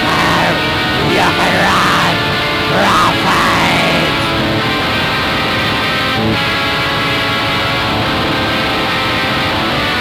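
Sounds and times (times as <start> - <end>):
bending melodic guitar line: 0.0 - 10.0
distorted guitar and bass metal: 0.0 - 10.0.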